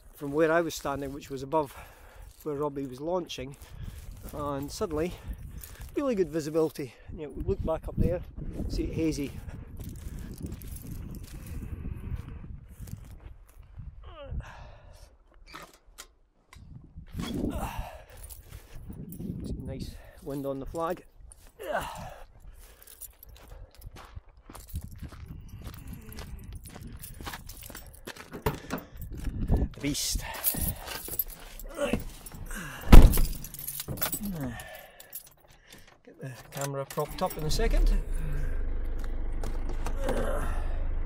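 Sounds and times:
wind buffeting microphone: 3.7s - 6.0s, 7.1s - 14.6s, 16.6s - 20.0s, 23.3s - 27.7s, 28.8s - 30.8s
car engine rumble: 30.6s - 34.3s, 37.0s - 41.0s.

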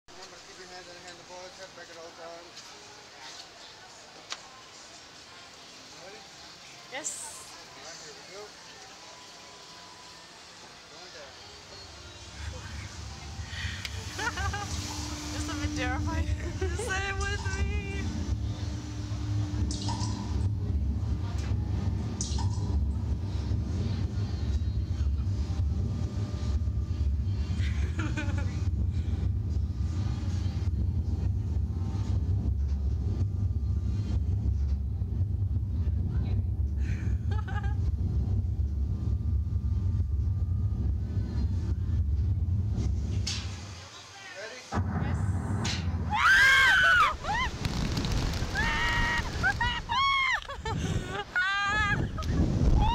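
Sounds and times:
low rumble: 12.5s - 43.3s, 44.7s - 51.2s
riders shrieking: 46.1s - 47.6s, 48.4s - 50.6s.

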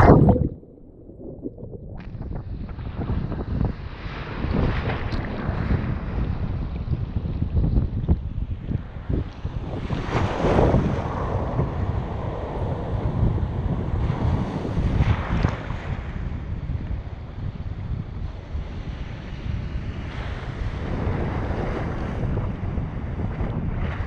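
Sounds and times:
ocean waves breaking: 0.0s - 2.4s
wind buffeting microphone: 0.0s - 24.0s.

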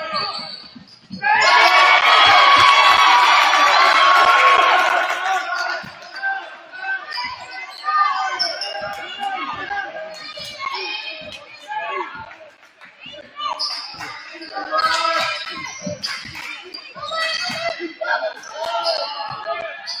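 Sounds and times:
crowd cheering and shouting: 1.2s - 11.1s.

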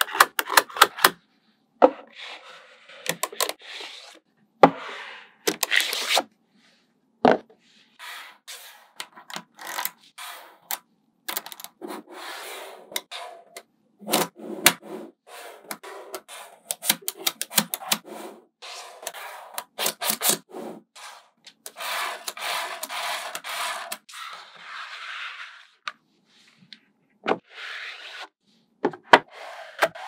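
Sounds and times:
rubbing and scraping on a surface: 1.9s - 6.9s, 7.5s - 10.8s, 11.6s - 30.0s.

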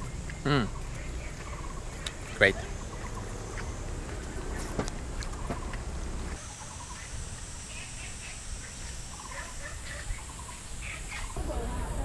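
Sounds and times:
birds chirping and trilling: 0.0s - 12.0s.

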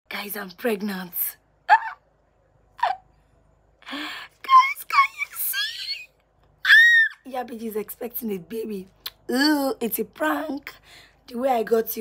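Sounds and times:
woman speaking: 0.1s - 1.4s, 4.4s - 6.1s, 7.2s - 12.0s
woman's excited yelp: 4.5s - 7.2s.

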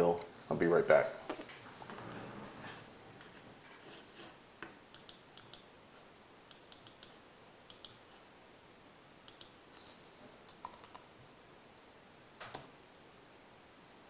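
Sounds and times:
faint keyboard clicks: 6.5s - 8.0s, 9.3s - 9.6s, 10.5s - 11.1s.

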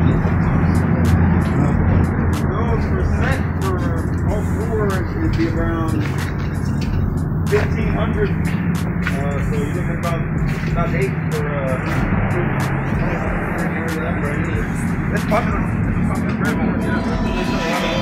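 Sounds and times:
background music: 0.0s - 18.0s
indistinct voices: 0.0s - 18.0s.

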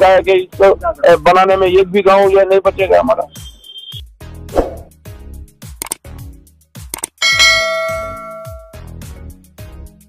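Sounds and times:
background music with steady beat: 0.0s - 10.0s
bright bell ding: 7.2s - 8.9s.

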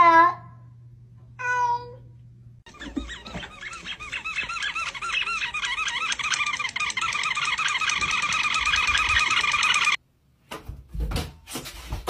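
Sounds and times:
squeaky dog toy squeaking: 2.7s - 10.0s.

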